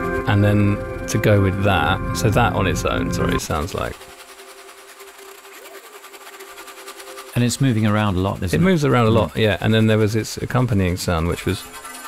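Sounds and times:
steady low electronic tones: 0.0 - 4.1
rapid buzzy pulsing: 0.0 - 12.0.

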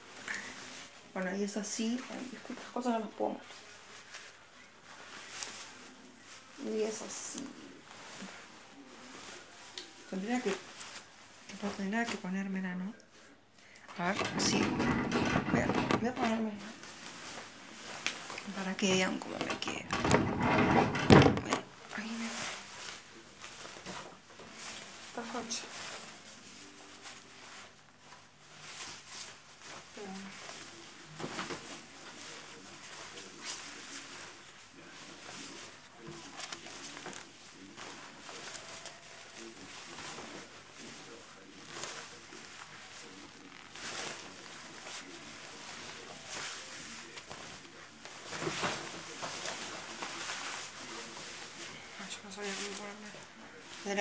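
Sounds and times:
jacket fabric rustling: 0.0 - 13.4, 14.0 - 54.0.

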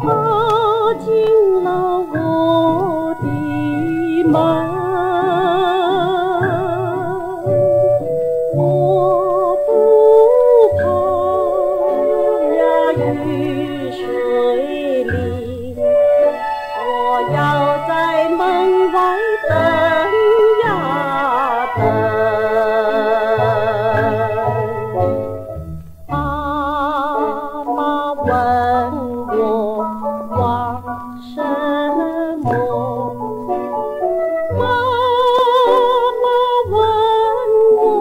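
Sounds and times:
woman singing with vibrato: 0.0 - 25.3, 26.1 - 33.8, 34.5 - 38.0
instrumental accompaniment: 0.0 - 38.0.

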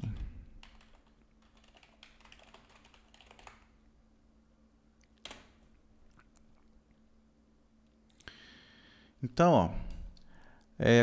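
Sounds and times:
computer keyboard typing: 0.0 - 3.7, 5.2 - 5.6.

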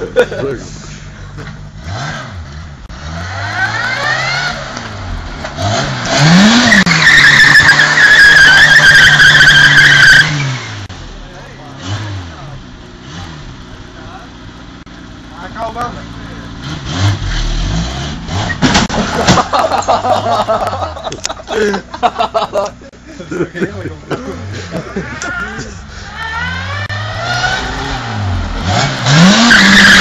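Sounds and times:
car engine revving: 0.6 - 20.7, 24.0 - 30.0
tyres squealing: 6.4 - 10.7, 28.8 - 30.0.

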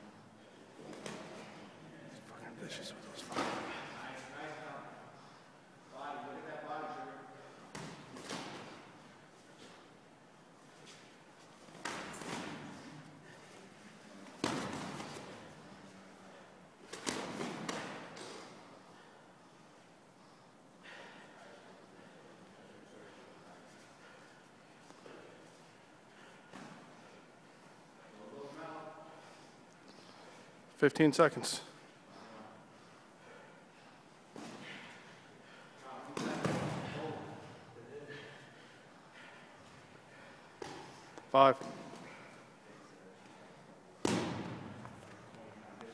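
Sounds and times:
boxing gloves smacking: 11.7 - 12.7, 14.4 - 15.4, 16.9 - 18.3, 44.0 - 45.2
gloved punches thumping: 44.0 - 44.6.

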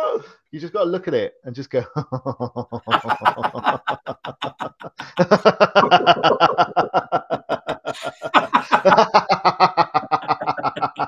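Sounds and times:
men laughing: 1.9 - 11.0.

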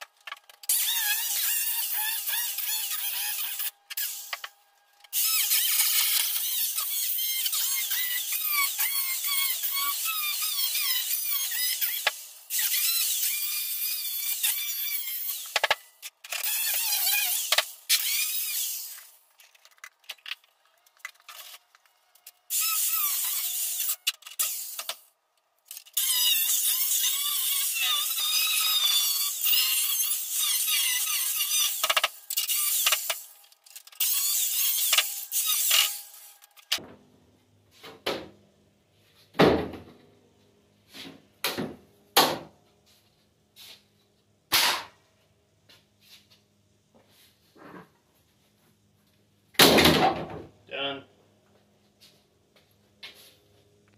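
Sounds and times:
angle grinder cutting sheet metal: 0.7 - 4.5, 5.1 - 19.2, 22.5 - 25.0, 25.7 - 36.8.

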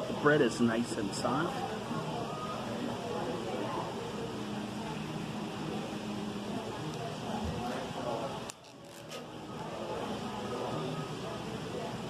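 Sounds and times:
restaurant room noise: 0.0 - 12.0.

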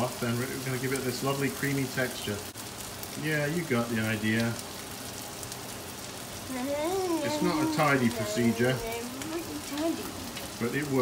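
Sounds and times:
food sizzling in a pan: 0.0 - 11.0
person speaking: 6.5 - 11.0.

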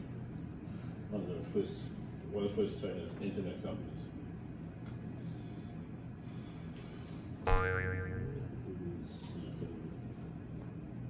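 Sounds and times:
comic boing sound effect: 7.5 - 8.6.

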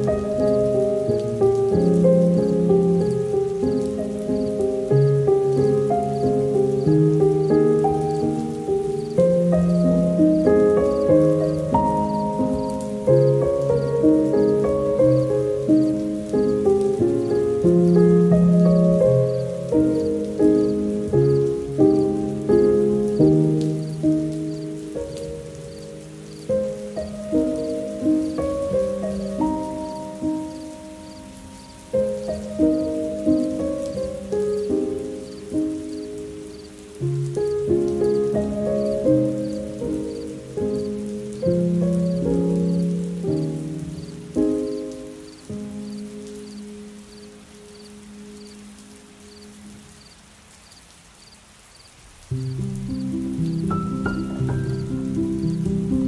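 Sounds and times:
soft solo piano: 0.0 - 50.0, 52.2 - 56.0
faint rain-like patter: 0.0 - 56.0.

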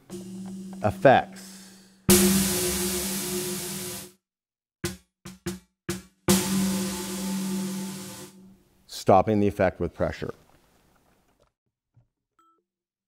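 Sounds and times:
electronic drum hit with ringing wash: 0.0 - 4.2, 5.3 - 8.6.

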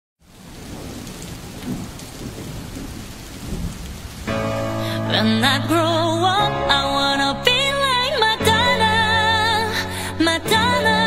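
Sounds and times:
steady rain: 0.2 - 11.0
thunder rumbling: 0.3 - 9.5.

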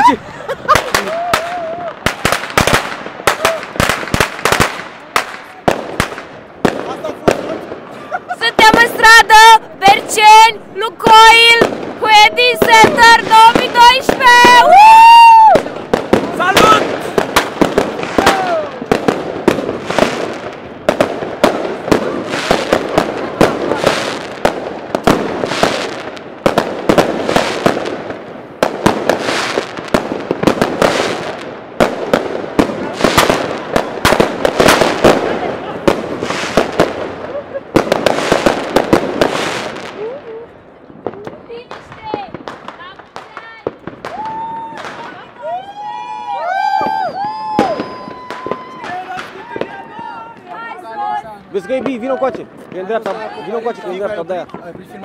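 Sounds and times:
fireworks bangs and crackle: 0.0 - 55.0.

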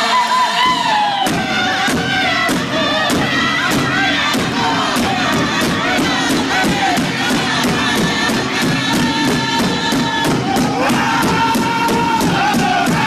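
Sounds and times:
crowd singing along: 0.0 - 13.0
drum group singing in unison: 0.0 - 13.0
bass hand drum beat: 0.7 - 13.0.

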